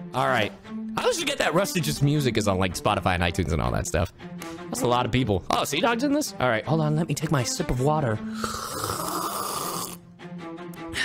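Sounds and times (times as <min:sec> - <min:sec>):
quiet background music: 0:00.0 - 0:11.0
person sipping water noisily: 0:08.3 - 0:10.0.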